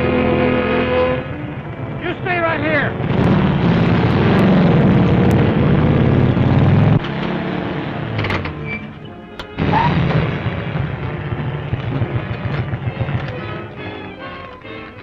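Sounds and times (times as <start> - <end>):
film score music: 0.0 - 15.0
vehicle engines running: 0.0 - 15.0
sudden loud burst: 9.6 - 13.7.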